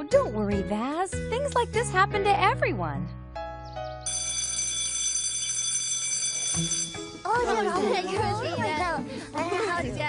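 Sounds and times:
electric school bell ringing: 4.1 - 7.6.

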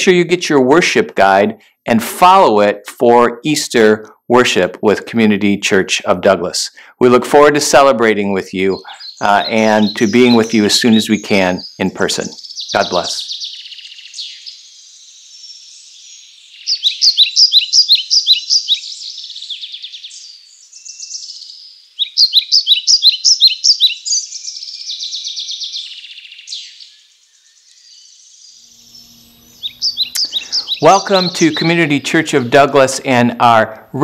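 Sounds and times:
songbirds chirping and warbling: 6.7 - 34.0.

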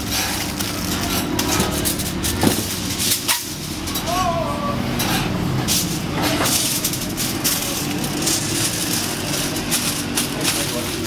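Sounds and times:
aluminium foil crinkling: 5.8 - 11.0.

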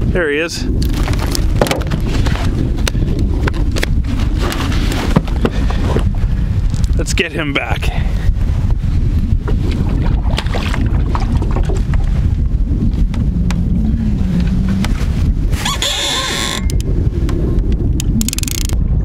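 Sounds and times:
wind buffeting microphone: 0.0 - 19.0
fish splashing into water: 9.9 - 12.1.

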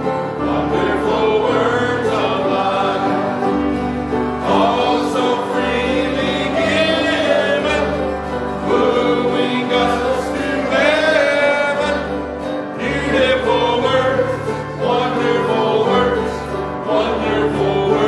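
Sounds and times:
congregation singing a hymn: 0.0 - 18.0.

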